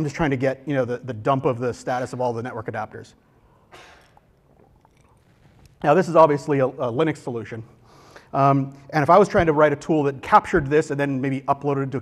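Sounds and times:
man speaking: 0:00.0 - 0:03.2, 0:05.8 - 0:12.0
mouth clicks: 0:03.7 - 0:05.9.

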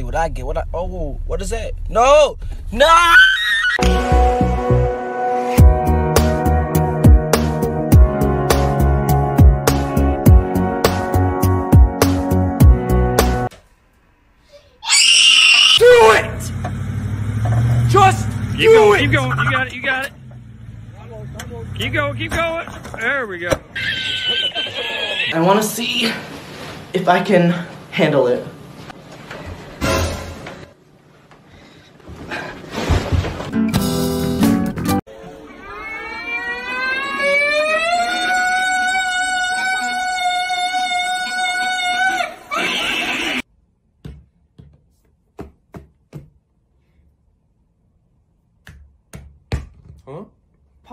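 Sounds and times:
vehicle engine running: 0:16.2 - 0:23.0.

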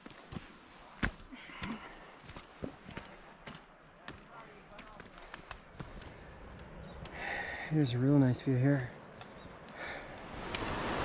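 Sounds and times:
footsteps on rocky trail: 0:00.0 - 0:07.4.

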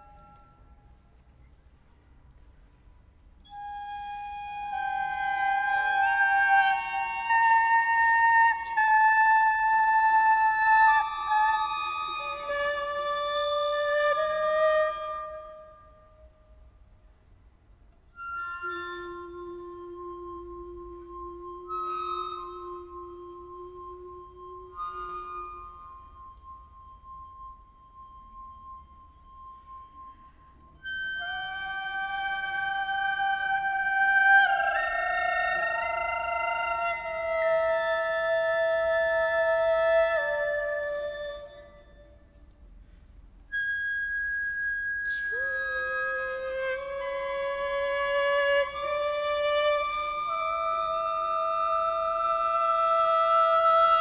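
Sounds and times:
wine glass singing tone: 0:00.0 - 0:01.5, 0:03.4 - 0:16.3, 0:18.2 - 0:42.4, 0:43.5 - 0:54.0
high flute notes: 0:00.0 - 0:16.8, 0:18.0 - 0:54.0.

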